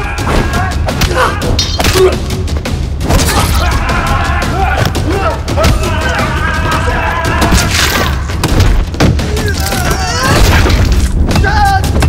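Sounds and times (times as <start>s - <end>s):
action film music: 0.0s - 12.0s
shouted voices: 3.2s - 8.3s.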